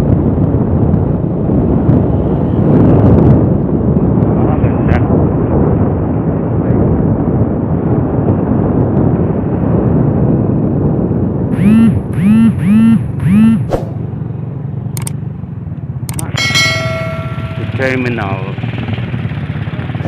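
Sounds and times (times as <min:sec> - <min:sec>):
wind noise: 0:00.0 - 0:20.0
short rising-and-falling tones: 0:11.6 - 0:14.0
motorcycle engine: 0:11.6 - 0:20.0
sharp clicks: 0:15.0 - 0:15.2, 0:16.1 - 0:16.4
bell ding: 0:16.3 - 0:18.1.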